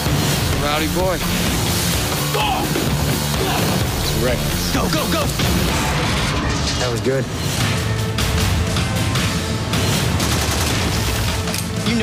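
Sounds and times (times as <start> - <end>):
music: 0.0 - 12.0
rapid rifle gunfire: 9.9 - 11.5.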